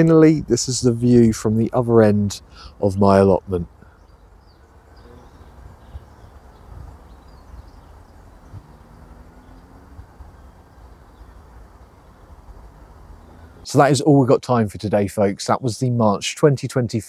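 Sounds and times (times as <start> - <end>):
faint bird chirps: 3.6 - 13.7
low rumble on microphone: 3.6 - 13.7.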